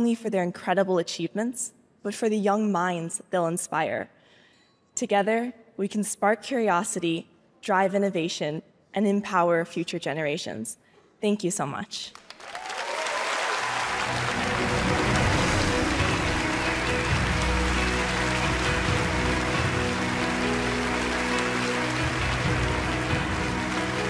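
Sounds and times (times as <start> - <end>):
audience applause: 12.1 - 24.0
music playing: 13.5 - 24.0.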